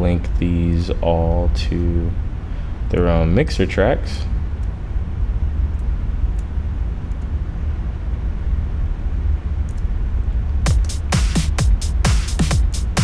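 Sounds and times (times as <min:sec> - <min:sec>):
steady low rumble: 0:00.0 - 0:13.0
electronic drum beat: 0:10.6 - 0:13.0.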